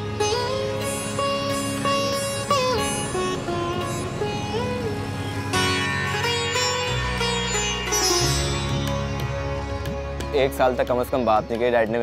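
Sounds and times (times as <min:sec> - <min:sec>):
low drone: 0:00.0 - 0:10.2
plucked string melody: 0:00.0 - 0:12.0.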